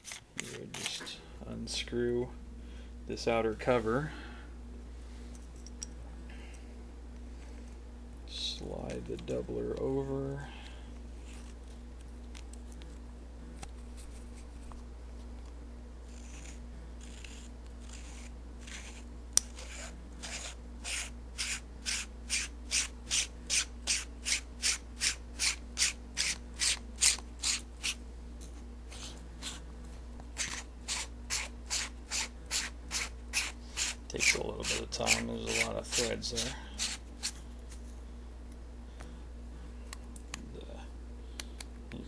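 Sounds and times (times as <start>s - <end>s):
threads rasping: 16.0s - 37.4s.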